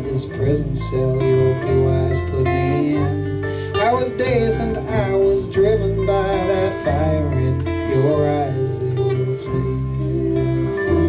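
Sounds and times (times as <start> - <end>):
plucked double bass: 0.0 - 11.0
sliding lead melody: 0.0 - 11.0
strummed acoustic guitar: 0.0 - 11.0.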